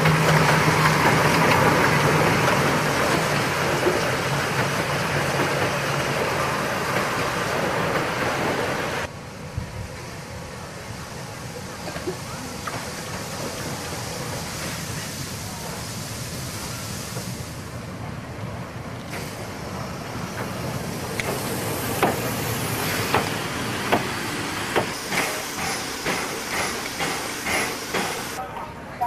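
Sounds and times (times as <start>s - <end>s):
steam locomotive hissing: 0.0s - 28.4s.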